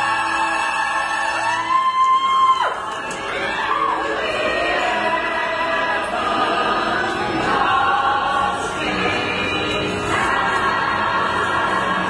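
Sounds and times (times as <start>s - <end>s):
group of voices singing: 0.0s - 1.9s, 2.8s - 12.0s
backing music: 0.0s - 12.0s.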